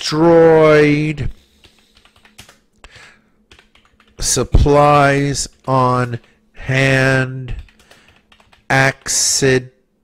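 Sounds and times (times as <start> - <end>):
keyboard typing: 1.4 - 6.4, 7.5 - 9.4.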